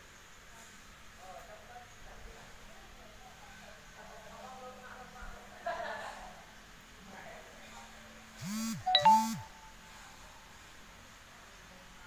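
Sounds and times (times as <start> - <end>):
short electronic buzzes: 8.4 - 9.8
bright notification chime: 8.9 - 9.7.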